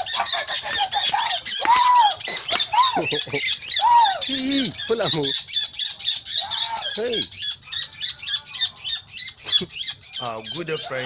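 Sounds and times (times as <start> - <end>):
bird squawking in distress: 0.0 - 11.0.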